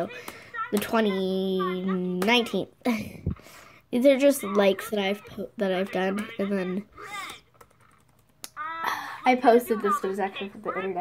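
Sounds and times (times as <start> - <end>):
girl speaking: 0.0 - 3.2, 3.9 - 7.5, 8.5 - 11.0
typing on computer keyboard: 7.5 - 8.4.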